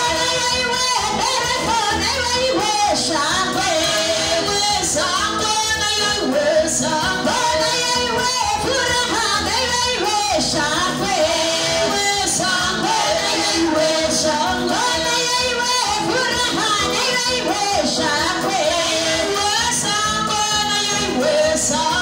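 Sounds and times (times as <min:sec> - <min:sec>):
women singing gospel: 0:00.0 - 0:22.0.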